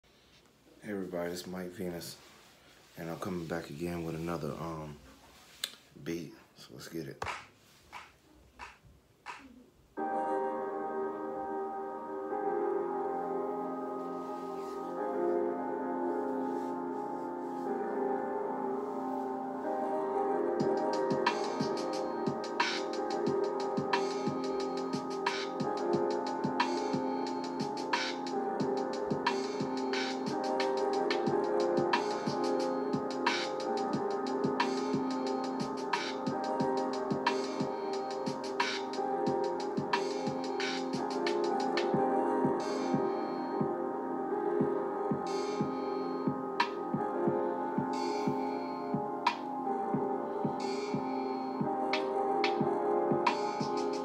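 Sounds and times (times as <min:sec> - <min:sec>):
mellow sustained chords: 0:10.0 - 0:54.0.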